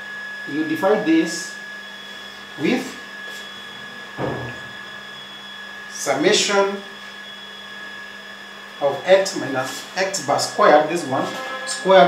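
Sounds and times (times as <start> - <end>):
faint high whine: 0.0 - 12.0
steady background hum: 0.0 - 12.0
man talking: 0.5 - 1.5, 2.6 - 3.0, 6.0 - 6.9, 8.8 - 12.0.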